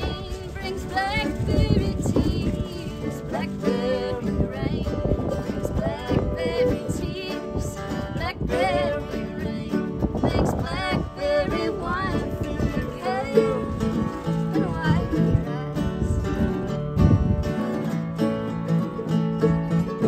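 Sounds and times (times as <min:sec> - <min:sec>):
acoustic guitars strumming: 0:00.0 - 0:20.0
picked mandolin: 0:00.0 - 0:20.0.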